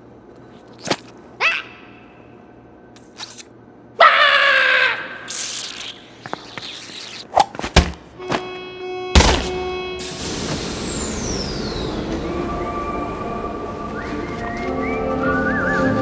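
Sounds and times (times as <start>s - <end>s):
loud thud: 9.2s - 9.6s
falling whistle: 10.7s - 13.1s, 13.9s - 16.0s
music with whistled melody: 11.4s - 16.0s.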